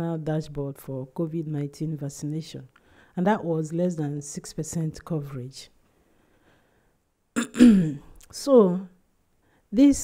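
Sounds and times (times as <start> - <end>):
woman clearing her throat: 7.4 - 8.2.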